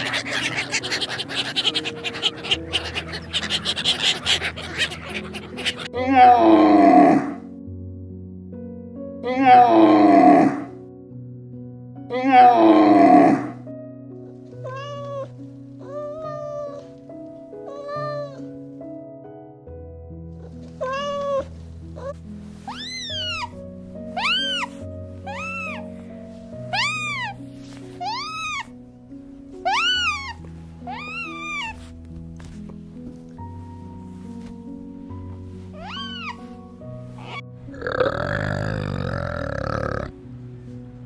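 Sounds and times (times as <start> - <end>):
high-pitched animal calls: 0.0 - 7.4, 22.7 - 26.0, 26.6 - 28.7, 29.6 - 31.9, 35.7 - 40.1
soft background music: 0.0 - 41.0.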